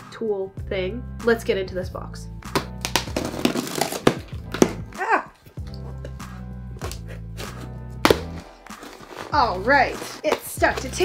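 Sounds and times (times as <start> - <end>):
background music with bass: 0.0 - 11.0
box cutter cutting tape: 2.8 - 4.2
knocks on cardboard box: 8.0 - 8.4.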